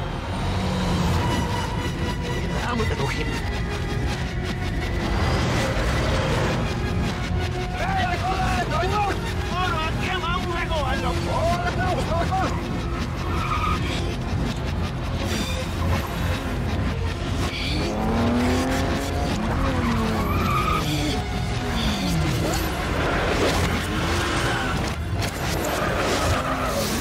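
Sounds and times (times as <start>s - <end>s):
engines and road noise rumble: 0.0s - 27.0s.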